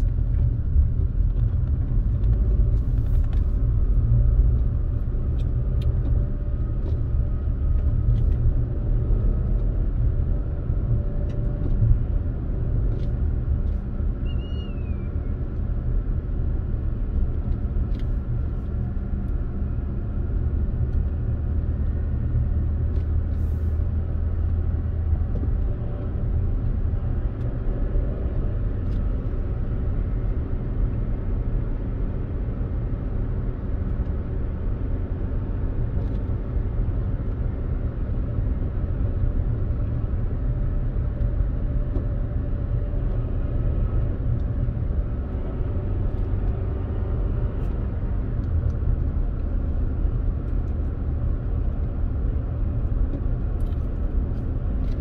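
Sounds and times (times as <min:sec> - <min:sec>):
car engine and tyre rumble: 0:00.0 - 0:55.0.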